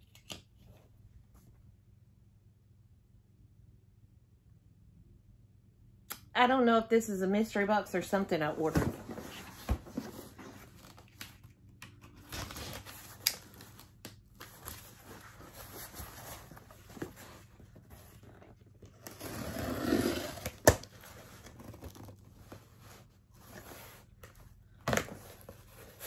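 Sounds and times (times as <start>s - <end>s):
cardboard rustling and scraping: 8.6s - 11.1s, 14.4s - 26.0s.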